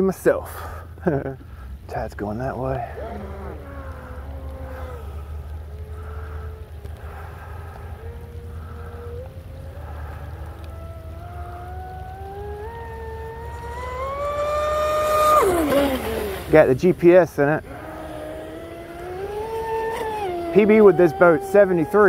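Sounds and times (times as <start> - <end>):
low rumble: 1.0 - 20.4
electric motor whining: 3.0 - 16.5, 17.6 - 22.0.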